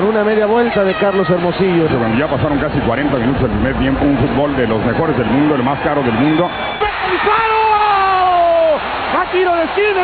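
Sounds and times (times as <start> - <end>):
commentator shouting: 0.0 - 2.2, 6.2 - 10.0
stadium crowd noise: 0.0 - 10.0.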